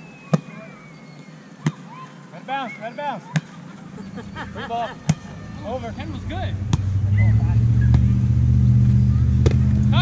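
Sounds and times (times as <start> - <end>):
vehicle engine humming: 3.9 - 10.0
hands slapping volleyball: 6.7 - 6.9.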